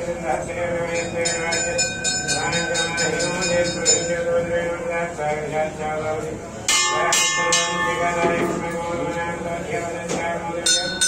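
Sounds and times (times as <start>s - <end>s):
temple bell strikes: 0.9s - 4.3s, 6.7s - 8.9s, 10.6s - 11.0s.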